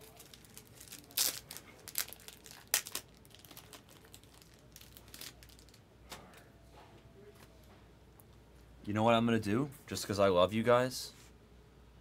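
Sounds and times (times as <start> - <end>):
plastic wrapping crinkling: 0.0 - 5.8.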